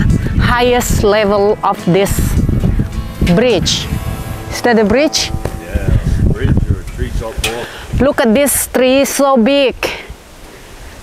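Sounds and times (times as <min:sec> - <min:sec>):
loud uneven low rumble: 0:00.0 - 0:08.2.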